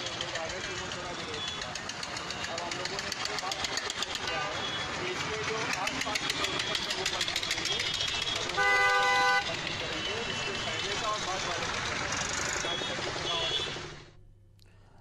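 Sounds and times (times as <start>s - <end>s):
busy street traffic: 0.0s - 14.3s
vehicle horn toot: 7.6s - 10.8s, 12.6s - 13.8s.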